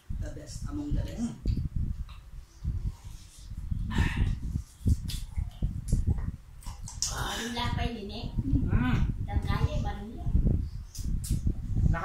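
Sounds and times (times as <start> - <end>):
people chewing and smacking: 1.0 - 7.2.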